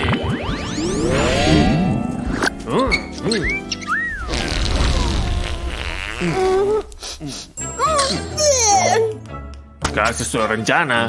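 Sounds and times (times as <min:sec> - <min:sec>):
bending pitched tone: 0:00.0 - 0:05.8
cartoon fart buzzing rasp: 0:04.1 - 0:06.7.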